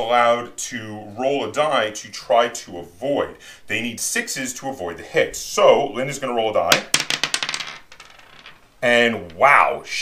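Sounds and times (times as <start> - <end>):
die clattering on wooden table: 6.7 - 8.6.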